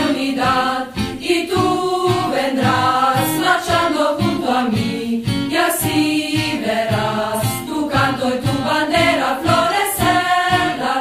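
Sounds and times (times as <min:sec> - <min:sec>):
voices singing over music: 0:00.0 - 0:11.0.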